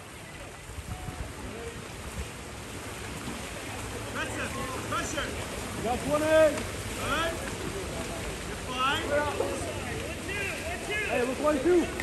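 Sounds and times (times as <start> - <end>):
water splashing from swimmers: 0.0 - 12.0.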